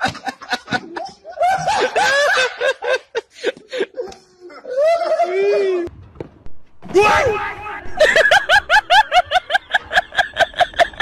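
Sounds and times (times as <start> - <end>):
hearty human laughter: 0.0 - 5.4, 7.9 - 11.0.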